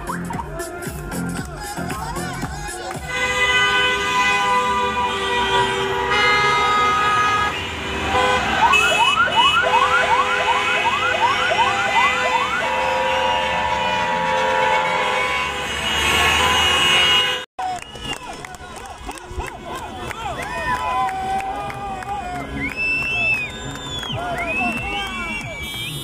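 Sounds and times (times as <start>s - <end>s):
car horns honking: 3.0s - 18.1s, 25.4s - 26.0s
rising siren yelp: 8.5s - 13.8s.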